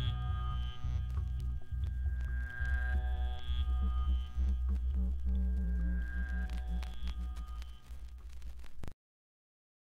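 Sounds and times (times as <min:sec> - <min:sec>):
pulsing low note: 0:00.0 - 0:07.6
deep bass: 0:00.2 - 0:07.2.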